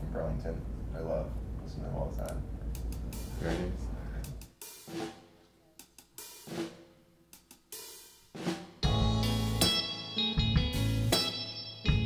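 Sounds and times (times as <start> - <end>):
drum hits: 3.1 - 10.8.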